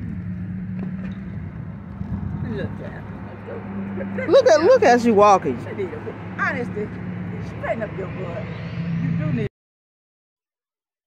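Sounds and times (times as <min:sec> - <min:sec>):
low engine hum: 0:00.0 - 0:09.5.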